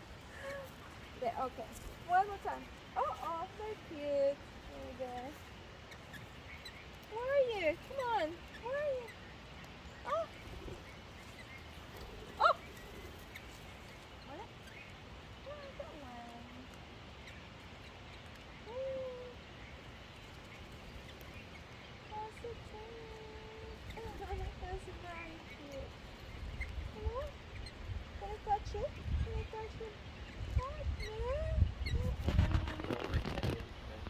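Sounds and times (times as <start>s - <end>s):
parrots calling: 0.0s - 32.2s.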